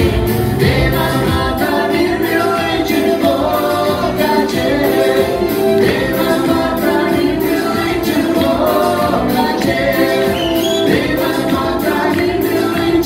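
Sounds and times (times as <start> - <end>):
acoustic guitar: 0.0 - 13.0
drum and cymbal beat: 0.0 - 13.0
keyboard: 0.0 - 13.0
man singing: 0.0 - 13.0.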